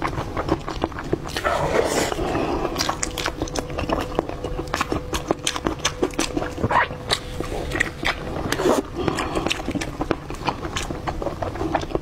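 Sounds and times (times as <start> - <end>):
wet chewing and lip-smacking: 0.0 - 12.0.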